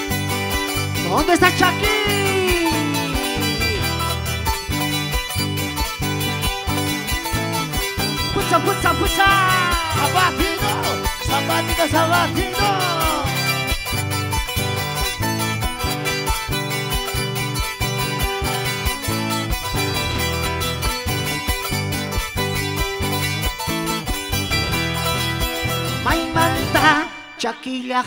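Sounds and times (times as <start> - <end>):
live band dance music: 0.8 - 4.7, 7.4 - 14.0, 23.9 - 27.6.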